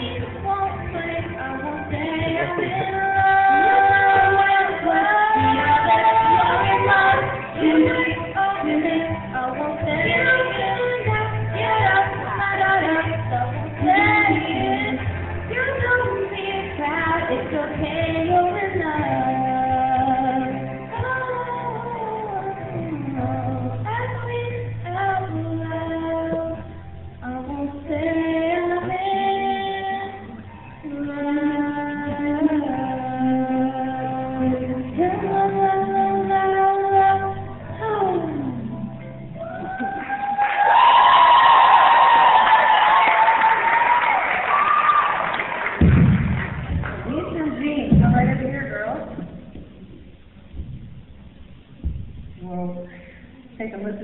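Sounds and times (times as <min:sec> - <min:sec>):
girls singing: 0:00.0 - 0:26.6
low rumbling room noise: 0:00.0 - 0:54.0.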